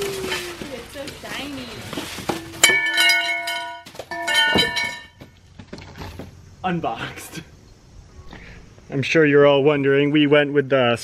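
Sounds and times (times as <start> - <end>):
aluminum ladder clanging: 0.2 - 6.2.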